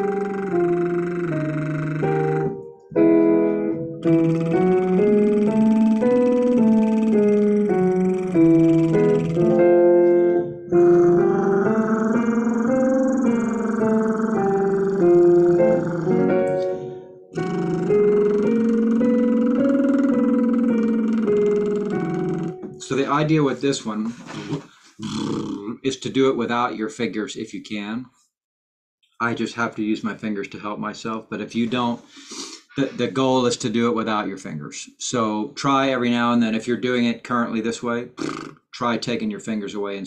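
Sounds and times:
electric piano playing: 0:00.0 - 0:22.9.

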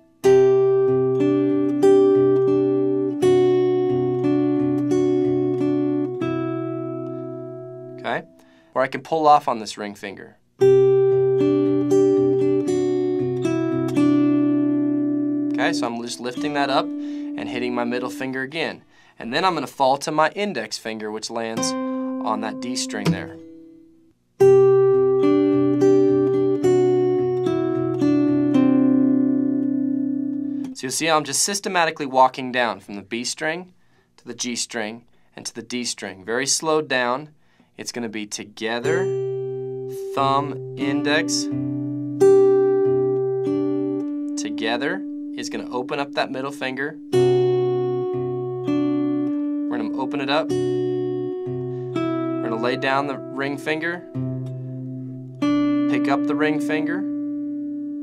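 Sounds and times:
fingerpicked acoustic guitar: 0:00.0 - 0:08.7, 0:10.5 - 0:19.6, 0:21.4 - 0:31.2, 0:38.6 - 0:58.0.

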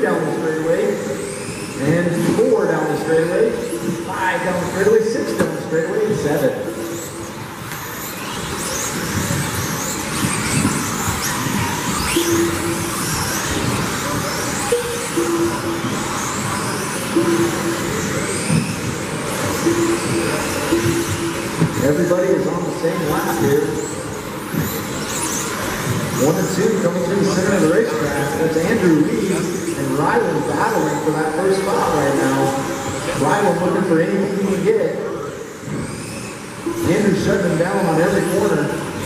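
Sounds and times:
rc car motors whining: 0:00.0 - 0:39.0.

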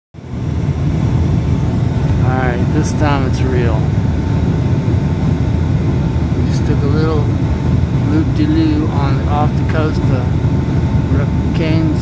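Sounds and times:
jet engines rumbling in cabin: 0:00.2 - 0:12.0
rushing air: 0:00.2 - 0:12.0.

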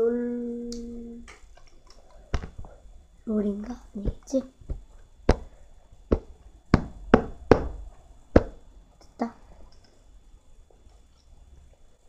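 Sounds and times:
hand slapping carpeted floor: 0:06.1 - 0:07.8.

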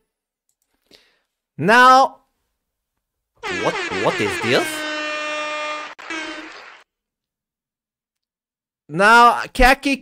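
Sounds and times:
horn-like tone blasts: 0:03.4 - 0:06.8.

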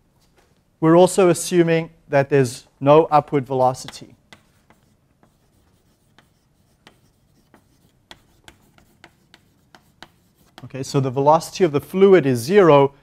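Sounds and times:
chalk tapping and scratching: 0:03.6 - 0:10.7.

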